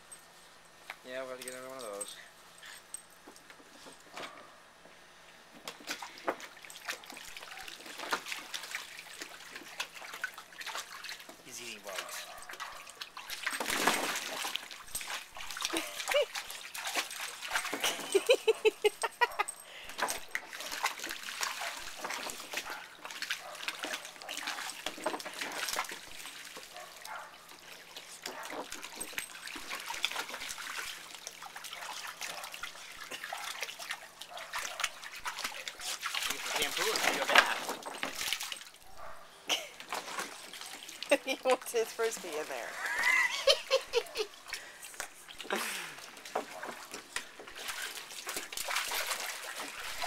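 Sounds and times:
water splashing in a pool: 5.2 - 50.0.

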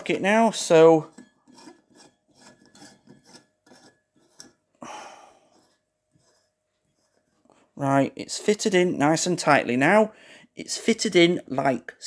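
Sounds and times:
screw cap scraping in lamp holder: 1.1 - 4.6.

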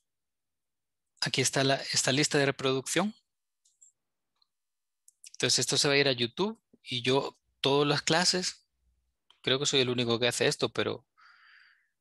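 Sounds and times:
man speaking: 1.2 - 3.2, 5.3 - 8.7, 9.4 - 11.0.

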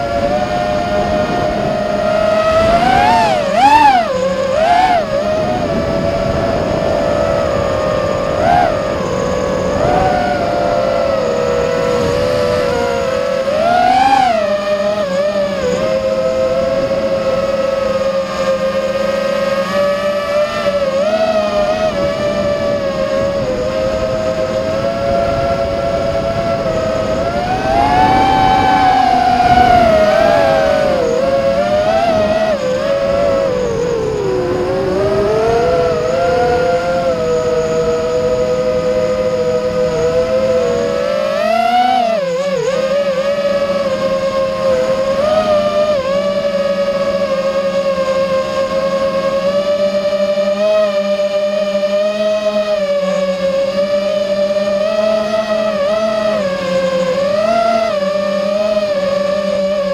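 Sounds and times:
electric aircraft motors whining: 0.0 - 59.9.

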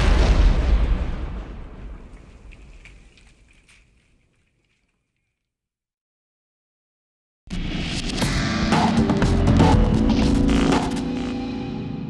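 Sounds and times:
explosion rumble with crackling: 0.0 - 3.6.

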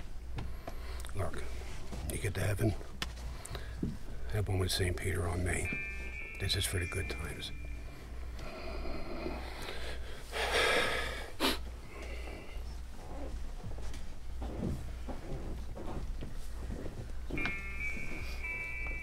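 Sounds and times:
low steady hum: 0.0 - 19.0
person sniffing: 10.4 - 11.6.

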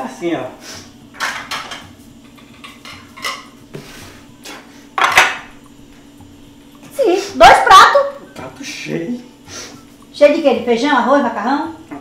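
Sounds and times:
ceramic plates clinking: 1.2 - 3.6, 5.0 - 5.6.

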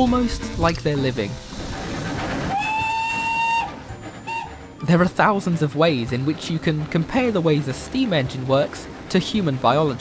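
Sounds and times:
steam locomotive whistle: 2.5 - 4.6.

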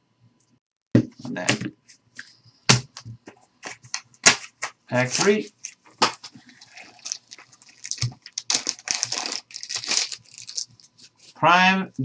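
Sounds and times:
plastic wrapper crinkling: 6.0 - 11.3.

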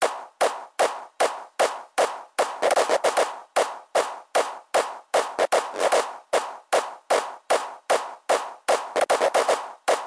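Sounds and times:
electronic percussion loop: 0.0 - 10.0.

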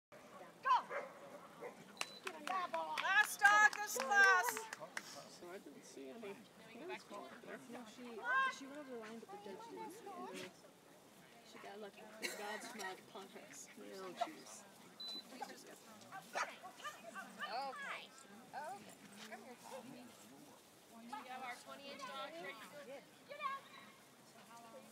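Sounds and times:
dog barking: 0.8 - 1.8.

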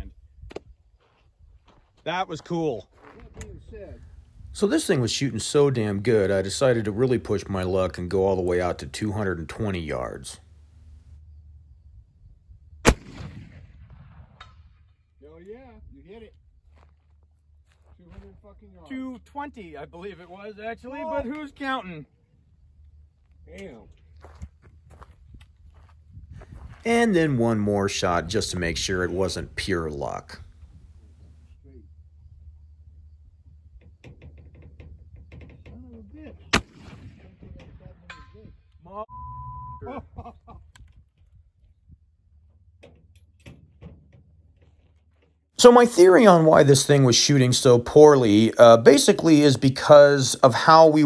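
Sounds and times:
rifle shot with rolling echo: 12.8 - 15.0, 36.5 - 37.6.

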